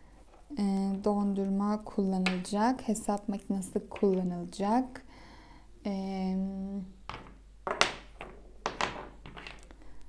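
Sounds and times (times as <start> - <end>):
wooden cubes knocking on table: 7.1 - 9.7.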